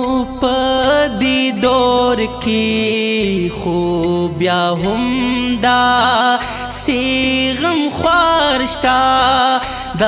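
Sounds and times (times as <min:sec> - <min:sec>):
solo voice singing slow melody: 0:00.0 - 0:10.0.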